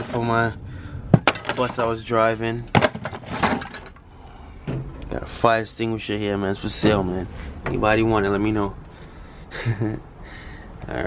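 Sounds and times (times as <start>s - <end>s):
rustling and knocking handling: 1.1s - 1.8s, 2.7s - 4.0s.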